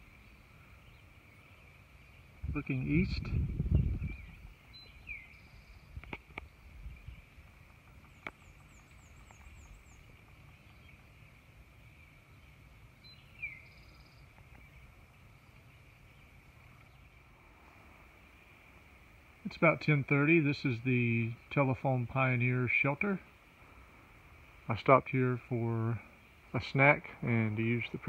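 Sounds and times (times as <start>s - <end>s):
faint clicks: 6.0s - 6.5s, 7.4s - 11.1s.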